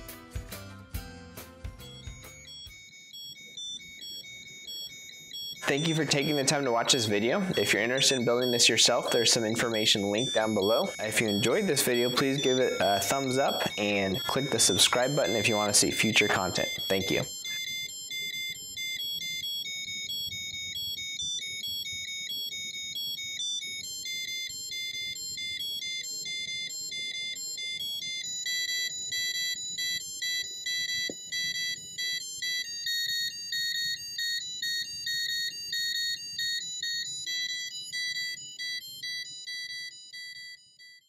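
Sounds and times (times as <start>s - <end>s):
high electronic beeping tune: 1.8s - 40.6s.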